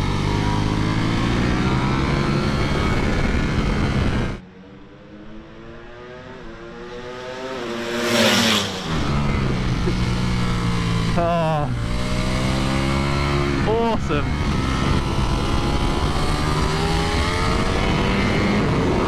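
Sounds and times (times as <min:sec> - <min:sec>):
motorcycle engine at high revs: 0:00.0 - 0:04.5, 0:05.1 - 0:19.0
motorcycle passing loudly: 0:00.0 - 0:19.0
motorcycles approaching: 0:00.0 - 0:19.0.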